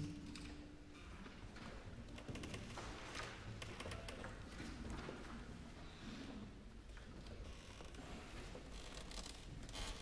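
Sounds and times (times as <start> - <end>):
quiet hall noise: 0.0 - 10.0.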